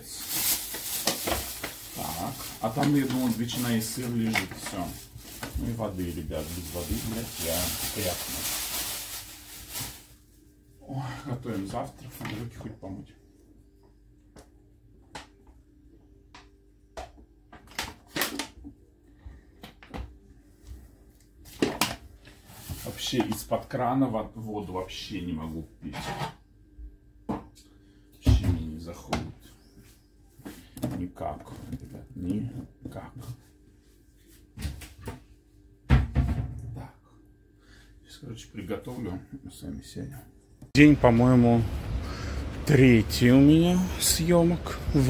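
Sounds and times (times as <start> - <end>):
faint steady hum: 18.6 - 34.5, 36.6 - 45.0.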